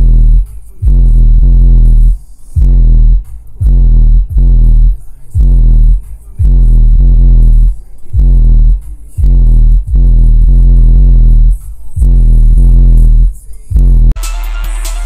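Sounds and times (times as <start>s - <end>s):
bass-heavy electronic music: 0.0s - 15.0s.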